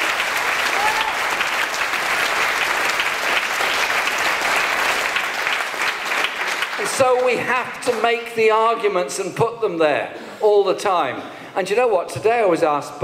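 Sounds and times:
audience applauding: 0.0 - 8.3.

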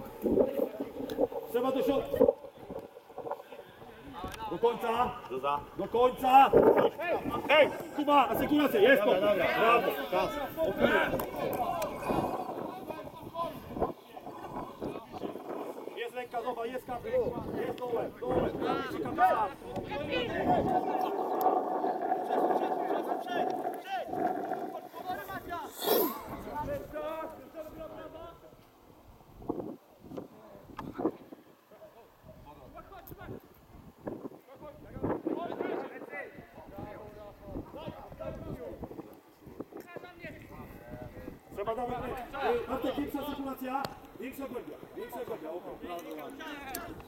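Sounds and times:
wind noise on microphone: 0.0 - 47.0
footballers shouting: 5.9 - 13.7.

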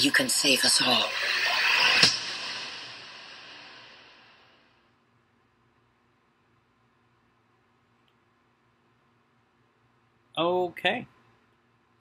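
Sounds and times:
noisy rising swell: 0.0 - 4.5
sharp hit: 0.0 - 4.6.

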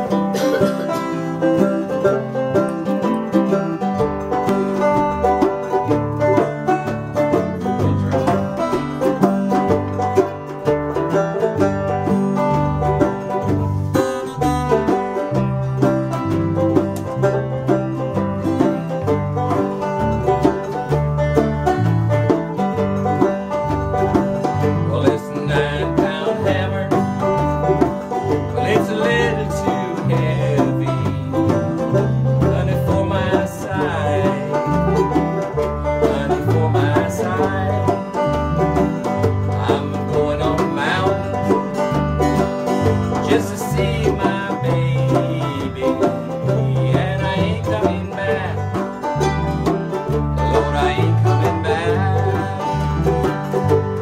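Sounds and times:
hand drum: 0.0 - 54.0
low bass line: 0.0 - 54.0
string band playing: 0.0 - 54.0.

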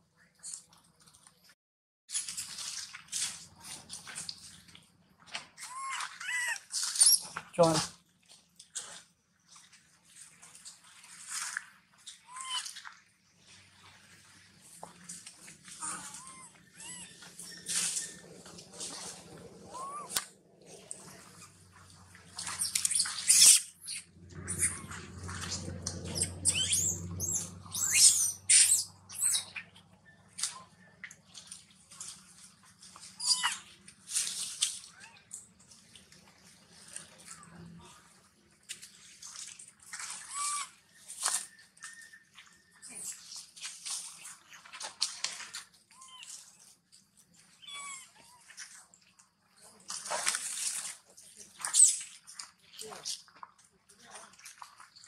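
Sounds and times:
macaques squeaking and screeching: 5.6 - 7.3, 12.3 - 12.7, 15.8 - 20.2, 22.5 - 29.7, 33.2 - 33.6, 40.2 - 40.7, 47.6 - 48.1
steady low hum: 24.0 - 29.1.

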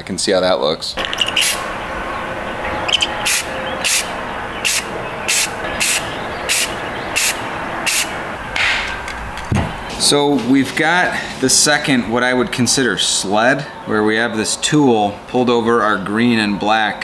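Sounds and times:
spray paint can hissing bursts: 1.1 - 1.6, 3.3 - 8.2.

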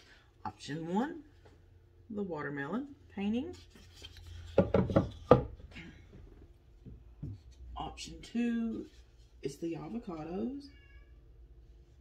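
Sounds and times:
picture frame knocking: 4.6 - 5.6.

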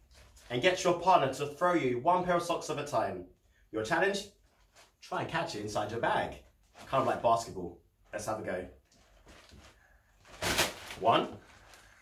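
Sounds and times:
plastic bag rustling: 4.4 - 5.0, 6.5 - 7.5, 8.8 - 12.0.

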